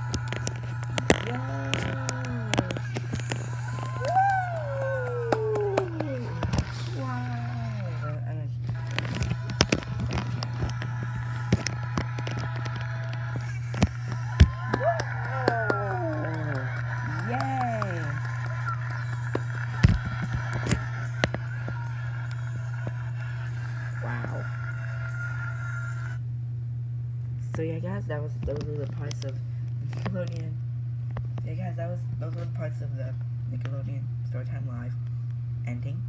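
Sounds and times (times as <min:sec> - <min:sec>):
low hum: 0:00.0 - 0:36.0.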